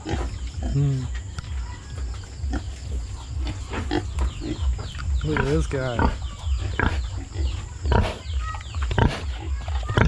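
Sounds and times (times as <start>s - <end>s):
pigs squealing: 0.0s - 10.0s
low microphone rumble: 0.2s - 9.8s
pig grunting: 2.4s - 10.0s.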